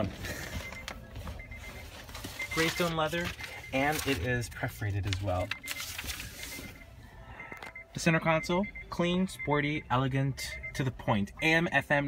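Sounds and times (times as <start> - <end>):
car warning chime beeping: 0.0 - 12.0.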